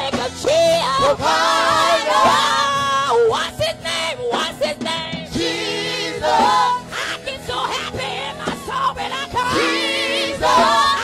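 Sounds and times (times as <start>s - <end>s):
gospel voices holding high notes: 0.4s - 3.6s, 4.4s - 11.0s.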